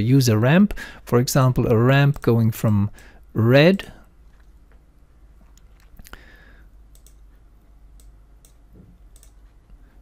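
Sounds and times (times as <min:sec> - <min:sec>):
faint steady hum: 0:00.0 - 0:10.0
computer mouse clicking: 0:06.9 - 0:07.3, 0:08.0 - 0:09.6.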